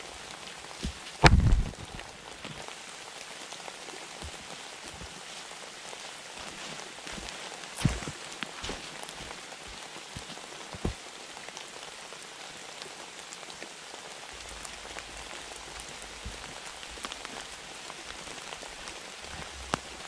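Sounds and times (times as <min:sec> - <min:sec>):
rain falling on leaves: 0:00.0 - 0:20.0
sharp knock: 0:01.2 - 0:01.8.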